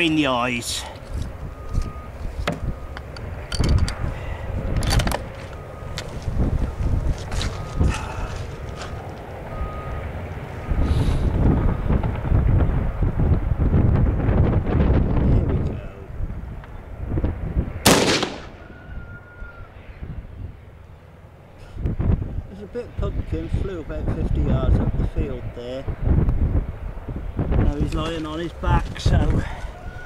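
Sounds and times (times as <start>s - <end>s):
wind buffeting microphone: 1.0s - 20.7s, 21.6s - 30.0s
handling clicks and knocks: 4.8s - 6.1s.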